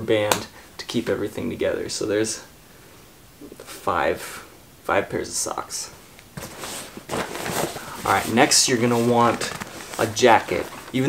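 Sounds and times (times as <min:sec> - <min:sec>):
fabric rustling and scuffing: 0:06.4 - 0:11.0.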